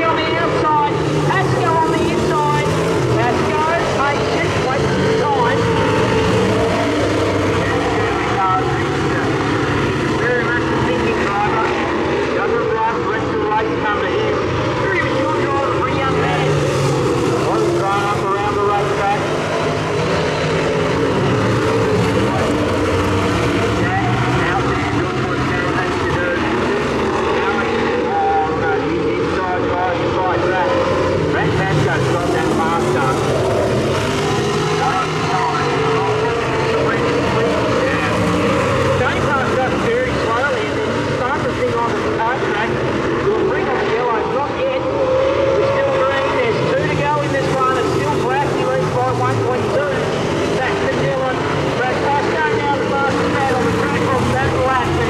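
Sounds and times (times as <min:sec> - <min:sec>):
racing car engines revving: 0:00.0 - 0:55.0.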